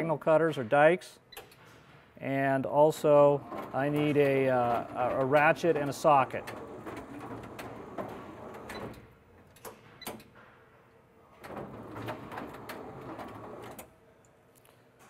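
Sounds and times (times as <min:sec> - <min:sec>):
motorised tool carousel running: 0:03.2 - 0:09.0, 0:11.4 - 0:13.8.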